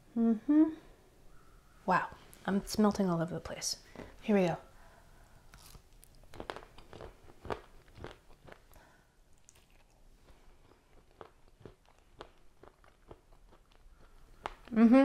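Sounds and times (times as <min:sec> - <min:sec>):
crunchy ice cream bar chewing: 0:05.5 - 0:14.8.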